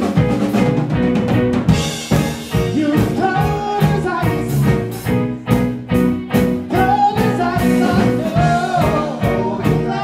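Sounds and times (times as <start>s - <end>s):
bass guitar: 0.0s - 10.0s
drums with steady beat: 0.0s - 10.0s
electric guitar: 0.0s - 10.0s
man singing: 2.5s - 5.1s, 6.3s - 10.0s.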